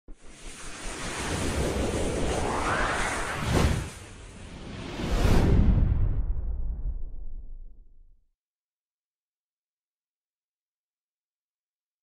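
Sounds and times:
whooshing sound effect: 0:00.1 - 0:07.8.

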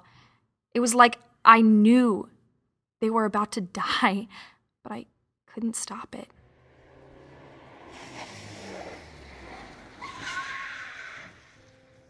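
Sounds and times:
car approaching: 0:06.3 - 0:12.0
tyre screech: 0:07.2 - 0:11.6.

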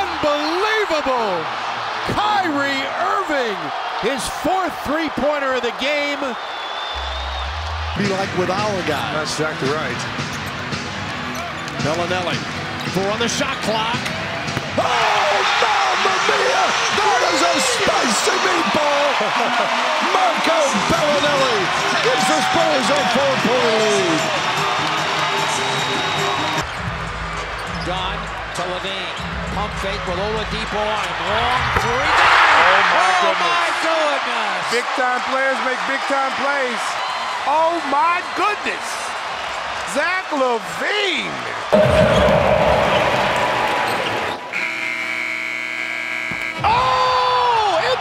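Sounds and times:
arena crowd noise: 0:00.0 - 0:48.0
music: 0:07.0 - 0:14.9, 0:21.6 - 0:31.8
buzzer horn: 0:44.5 - 0:47.0.

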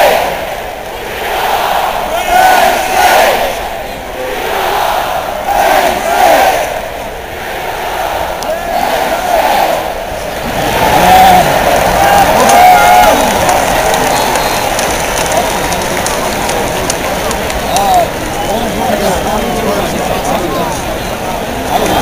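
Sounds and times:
stadium crowd cheering and shouting: 0:00.0 - 0:22.0.

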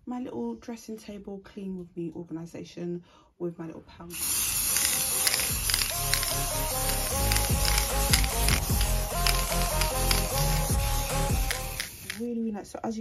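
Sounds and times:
music with steady beat: 0:04.7 - 0:12.2.

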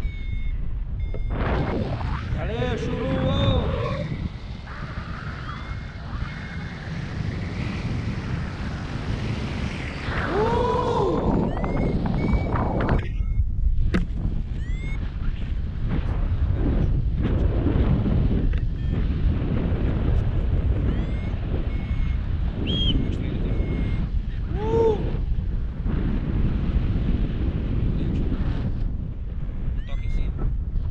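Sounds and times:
whistle-like tones: 0:00.0 - 0:02.4, 0:05.2 - 0:07.0, 0:10.3 - 0:12.9, 0:14.6 - 0:15.0, 0:20.9 - 0:24.0
wind buffeting microphone: 0:00.0 - 0:30.9.

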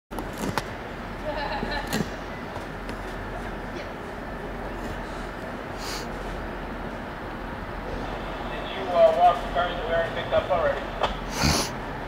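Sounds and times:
rail yard rumble: 0:00.1 - 0:12.0.

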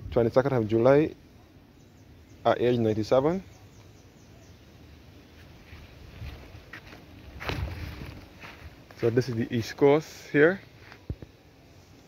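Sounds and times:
footsteps on grass: 0:05.3 - 0:09.8, 0:10.6 - 0:11.3.

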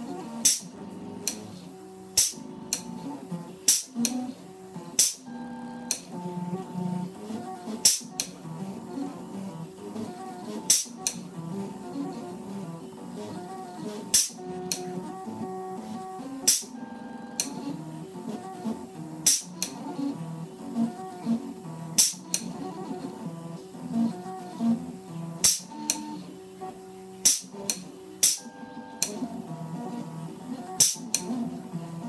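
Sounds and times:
sharp clicks: 0:25.4 - 0:26.2.

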